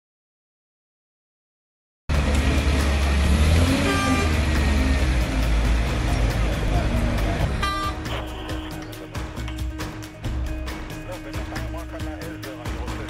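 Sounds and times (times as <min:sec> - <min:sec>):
traffic rumble: 0:02.1 - 0:10.8
street crowd: 0:02.1 - 0:13.0
car horn: 0:03.6 - 0:04.9, 0:07.4 - 0:09.1.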